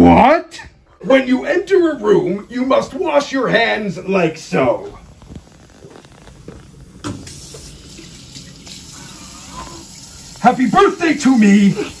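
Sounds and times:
hands being washed: 1.1s - 4.2s, 7.0s - 12.0s
tap water running into sink: 7.0s - 12.0s.

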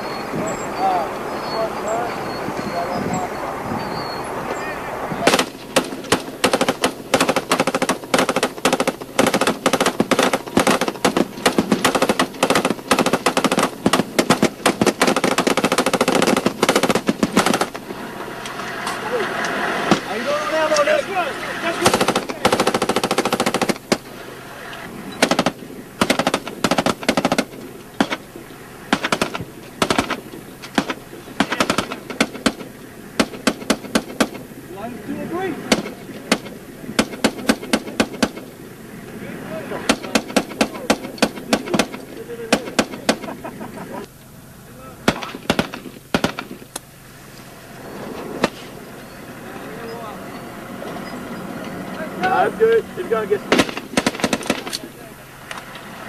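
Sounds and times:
rifle and machine gun fire: 5.2s - 18.1s, 19.8s - 34.6s, 35.4s - 38.6s, 39.7s - 43.5s, 45.0s - 46.7s, 48.3s - 48.8s, 53.4s - 55.1s.

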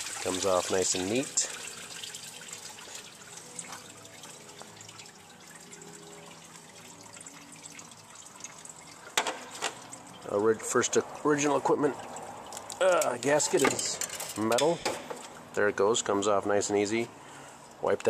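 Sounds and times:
coolant trickling into pan: 0.0s - 15.7s.

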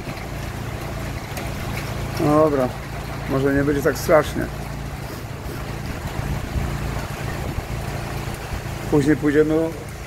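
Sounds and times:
gusty wind through trees: 4.7s - 9.0s
wind buffeting microphone: 5.2s - 8.8s.

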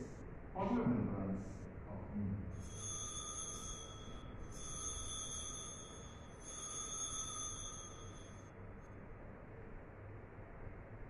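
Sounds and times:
altar bell ringing: 2.6s - 8.5s.

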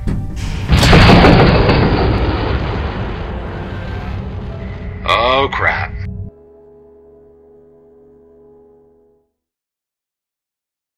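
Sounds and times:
rocket engine blast: 0.5s - 5.1s.

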